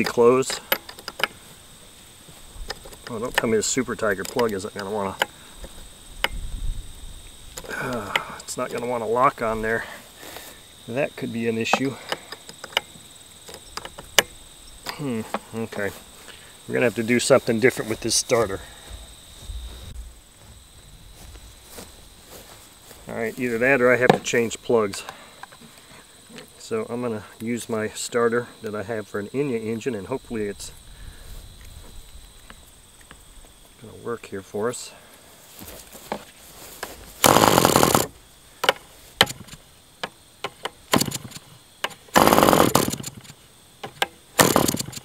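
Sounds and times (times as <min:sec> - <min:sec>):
crickets chirping: 0:00.0 - 0:45.0
clicks of handling engine parts: 0:11.7 - 0:15.5.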